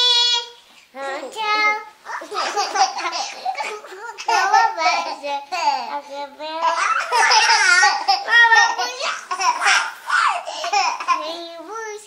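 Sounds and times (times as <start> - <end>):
children laughing: 2.1 - 5.9, 6.6 - 11.3.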